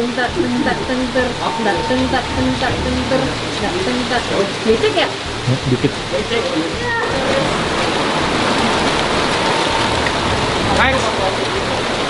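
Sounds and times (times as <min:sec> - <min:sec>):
heavy rain falling: 0:00.0 - 0:12.0.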